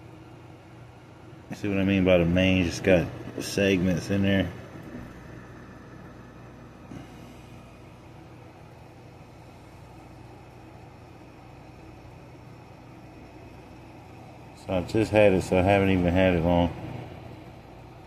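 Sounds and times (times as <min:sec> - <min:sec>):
steady low hum with hiss: 0:00.0 - 0:18.0.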